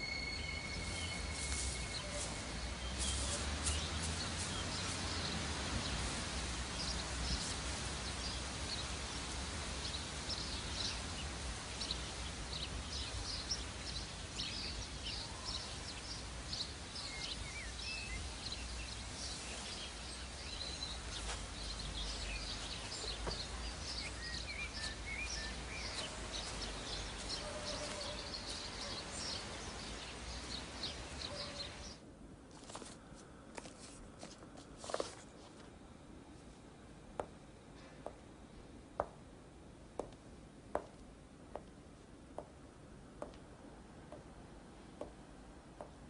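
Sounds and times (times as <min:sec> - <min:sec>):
whistled bird notes: 0:00.0 - 0:03.5, 0:23.9 - 0:29.4
small birds chirping: 0:00.0 - 0:32.0.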